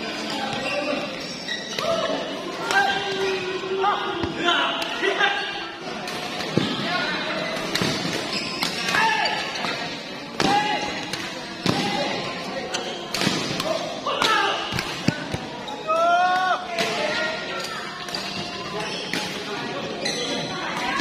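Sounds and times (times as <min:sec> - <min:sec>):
shoes squeaking on court: 0:00.2 - 0:02.1, 0:07.4 - 0:09.9, 0:12.6 - 0:13.2, 0:17.6 - 0:20.6.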